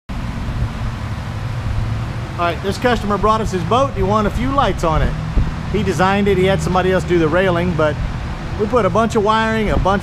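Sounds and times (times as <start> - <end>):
low rumble: 0.1 - 8.6.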